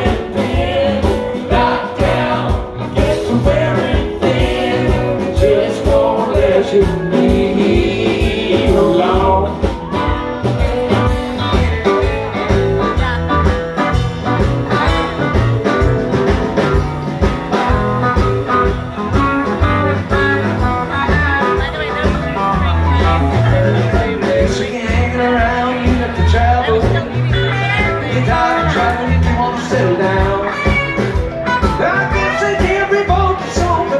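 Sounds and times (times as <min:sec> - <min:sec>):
drums: 0:00.0 - 0:33.9
electric bass: 0:00.0 - 0:33.9
electric guitars: 0:00.0 - 0:33.9
keyboards: 0:00.0 - 0:33.9.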